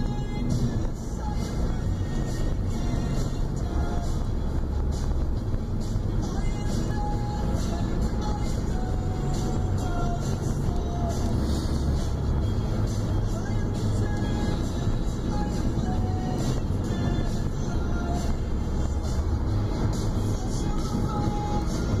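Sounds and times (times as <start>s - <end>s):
music playing in car cabin: 0.0s - 22.0s
road and engine rumble: 0.0s - 22.0s.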